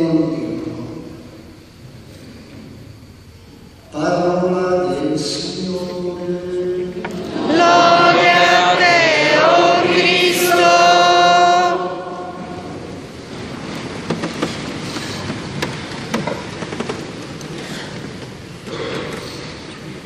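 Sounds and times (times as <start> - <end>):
congregation singing a chant: 3.9 - 13.2
rustling with small knocks: 13.3 - 19.9.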